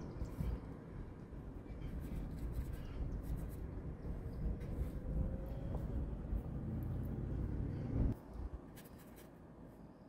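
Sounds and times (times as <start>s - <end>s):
low rumble of passing traffic: 0.0s - 10.0s
paintbrush scratching on canvas: 1.9s - 3.7s.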